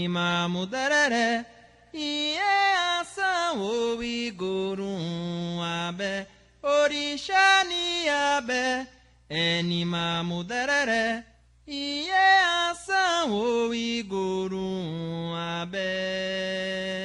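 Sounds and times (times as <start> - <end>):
person chanting unaccompanied: 0.0 - 17.0.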